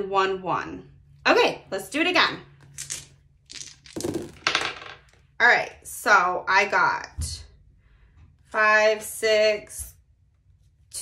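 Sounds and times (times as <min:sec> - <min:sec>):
dice clattering on paper: 0:02.6 - 0:05.2.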